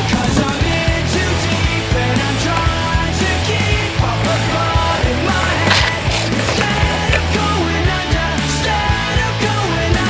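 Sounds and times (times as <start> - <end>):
rock music with bass and drums: 0.0 - 10.0
skateboard rolling on concrete: 0.0 - 10.0.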